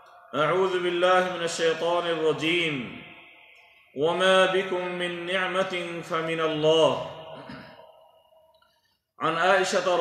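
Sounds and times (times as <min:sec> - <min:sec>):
man reciting: 0:00.0 - 0:08.0, 0:09.2 - 0:10.0.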